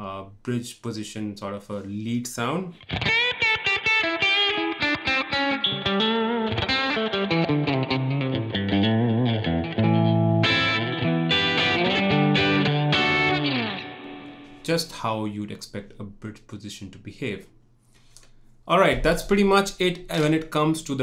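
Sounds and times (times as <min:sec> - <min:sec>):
electric guitar lead with vibrato: 0:02.8 - 0:14.6.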